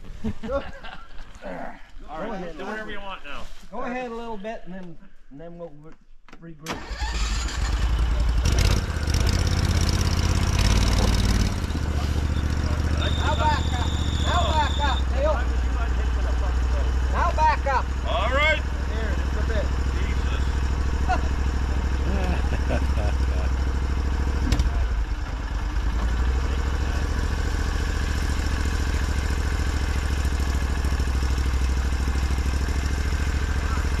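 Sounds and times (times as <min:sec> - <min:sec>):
engine idling: 0:06.8 - 0:34.0.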